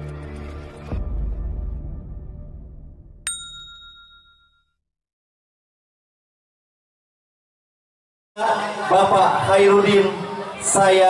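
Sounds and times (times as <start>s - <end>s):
bright metallic ding: 3.3s - 4.6s.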